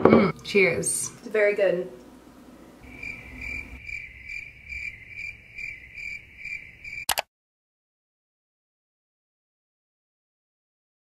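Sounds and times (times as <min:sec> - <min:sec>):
cricket chirping: 0:02.8 - 0:07.1.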